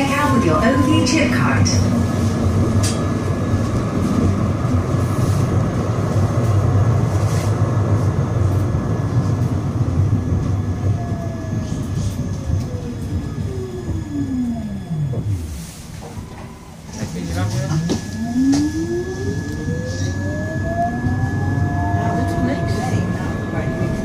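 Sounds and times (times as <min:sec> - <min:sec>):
faint high whine: 0:00.0 - 0:01.9, 0:11.1 - 0:24.0
tram wheels rumbling on rail: 0:00.0 - 0:24.0
electric whine gliding down: 0:10.9 - 0:24.0.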